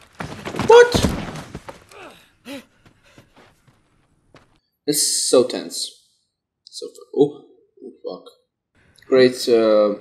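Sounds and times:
man gasping: 0:02.0 - 0:03.2.

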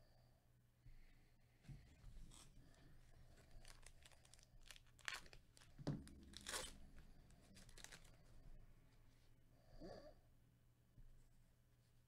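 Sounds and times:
foil wrapper crinkling and tearing: 0:03.4 - 0:08.2.

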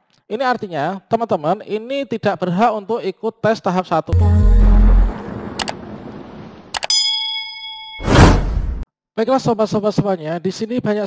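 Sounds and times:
bright bell ding: 0:06.8 - 0:08.4.

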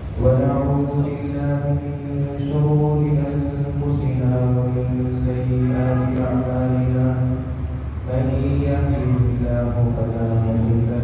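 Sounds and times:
man chanting recitation: 0:00.0 - 0:11.0.

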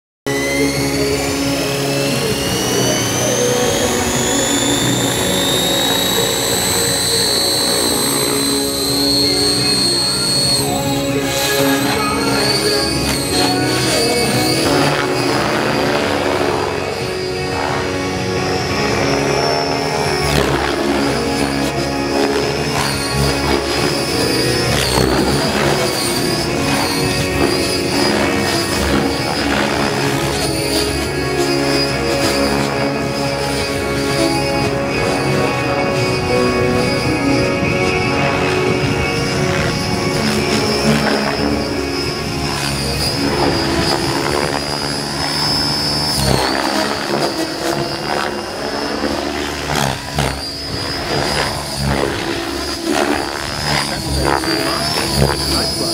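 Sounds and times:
background music: 0:00.3 - 0:55.9
model helicopter motor whine: 0:00.3 - 0:55.9.

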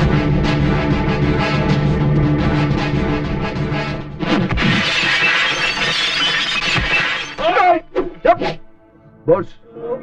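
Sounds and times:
background music: 0:00.0 - 0:10.0
glass breaking: 0:04.6 - 0:07.5.

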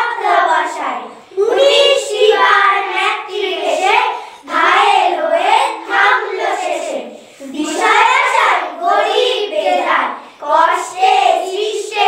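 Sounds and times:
girls reciting in unison: 0:00.0 - 0:12.0.

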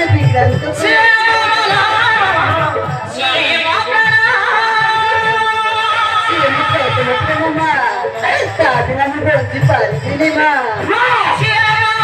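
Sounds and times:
high voice singing folk song: 0:00.0 - 0:12.0.

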